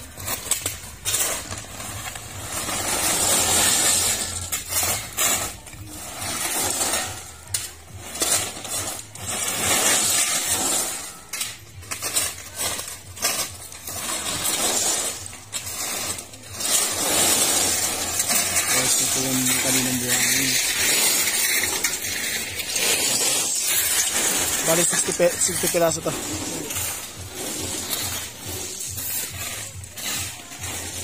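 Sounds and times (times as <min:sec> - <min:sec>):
gravel pouring off truck: 0:00.0 - 0:31.0
shovels scraping gravel: 0:00.0 - 0:31.0.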